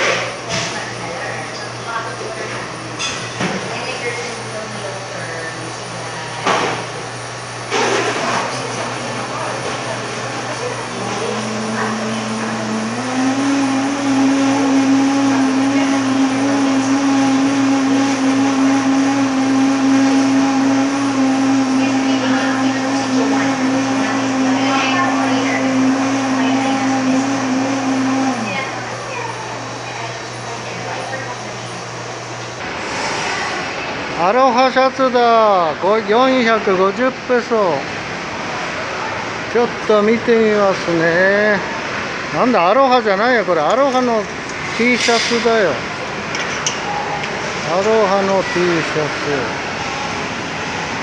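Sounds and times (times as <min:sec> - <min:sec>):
electric drink blender running: 0:07.7 - 0:33.2
steady low hum: 0:09.1 - 0:34.2.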